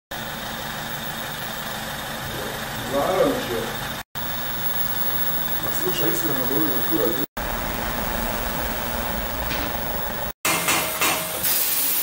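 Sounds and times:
workshop machinery humming: 0.1 - 12.0.

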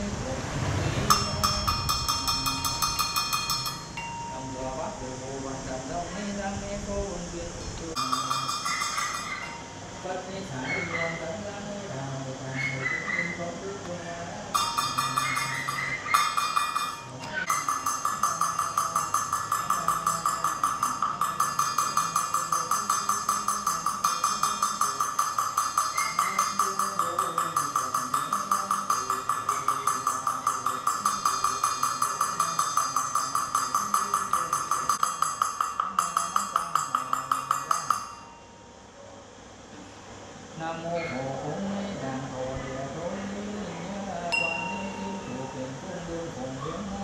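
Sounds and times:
low chanting voice: 0.0 - 35.2, 39.0 - 47.0.

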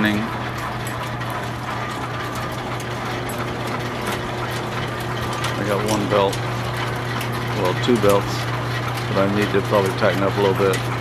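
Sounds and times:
line shafts and belts humming: 0.0 - 11.0
ticks from belts and pulleys: 0.0 - 11.0.

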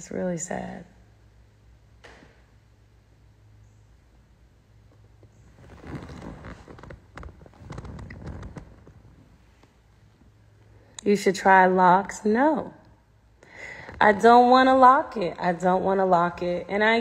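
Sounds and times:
faint low hum: 0.0 - 17.0
soft rustling: 4.9 - 10.7.

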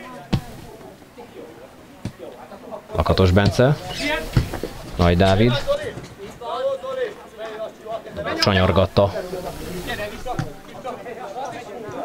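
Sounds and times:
commentary voice: 4.9 - 5.7, 8.2 - 10.8.

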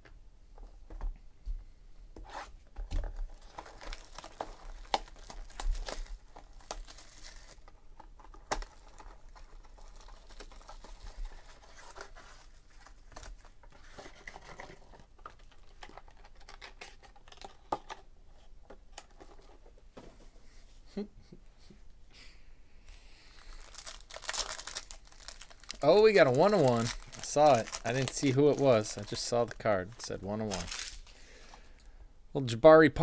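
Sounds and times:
foil rustling and crinkling: 3.1 - 14.9, 23.4 - 31.2
cardboard tearing: 23.6 - 31.0.

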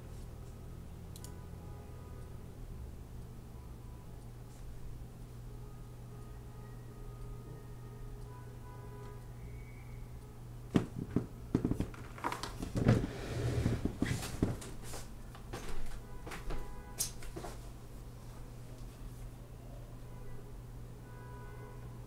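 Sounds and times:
low steady hum: 0.0 - 16.9
knocks and thuds: 10.7 - 12.0.

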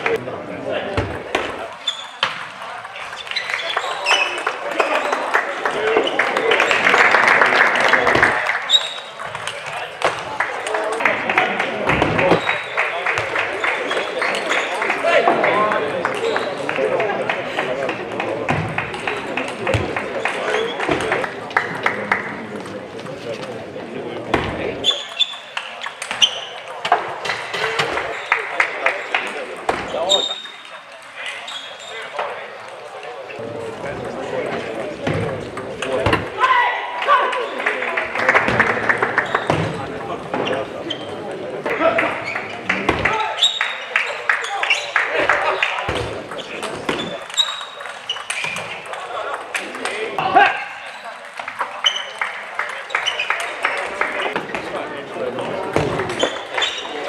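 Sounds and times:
murmur of voices: 0.0 - 57.0
shoes squeaking on floor: 1.0 - 4.6, 8.6 - 9.4, 11.9 - 12.9, 13.6 - 14.9, 16.2 - 16.6, 24.6 - 28.5, 29.6 - 32.4, 39.0 - 49.0, 50.8 - 52.3, 52.9 - 53.6, 55.7 - 57.0.

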